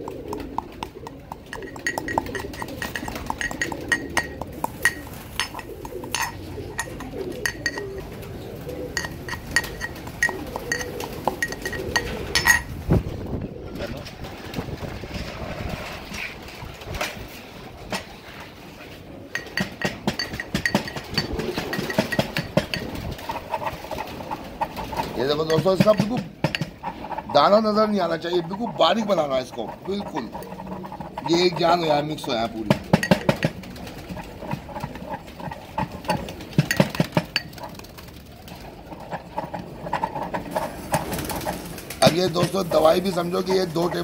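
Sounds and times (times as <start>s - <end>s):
pestle clinking in steel mortar: 0.0s - 8.1s, 8.9s - 12.8s, 19.3s - 37.8s, 38.9s - 44.0s.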